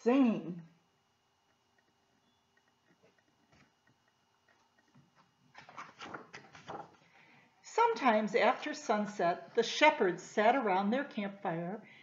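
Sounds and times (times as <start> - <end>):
paper page rustling: 4.8 - 7.0.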